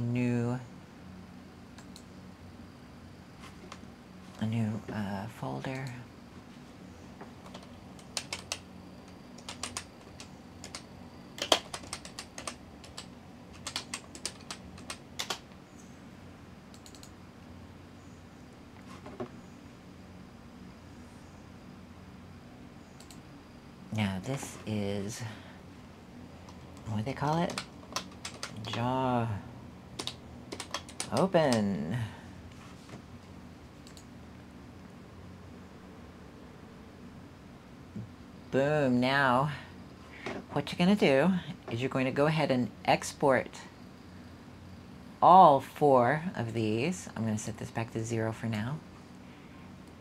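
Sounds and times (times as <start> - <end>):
faint low hum: 0.0 - 50.0
typing on computer keyboard: 7.5 - 8.7, 9.4 - 15.4, 16.8 - 17.1, 26.5 - 28.8, 30.0 - 31.7.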